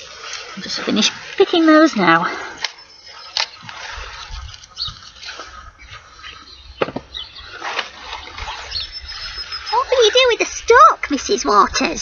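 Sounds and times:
wind rumble on microphone: 3.7s - 12.0s.

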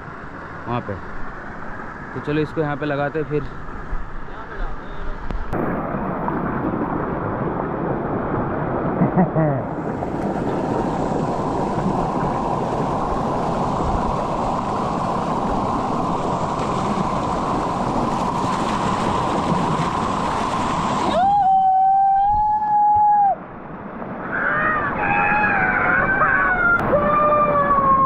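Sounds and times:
water rushing over rocks: 5.0s - 28.0s
wavering cry-like sounds: 24.2s - 28.0s.

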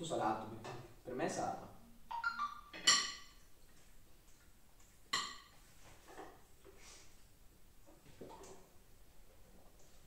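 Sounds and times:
spoon clinking on tableware: 2.2s - 3.4s.

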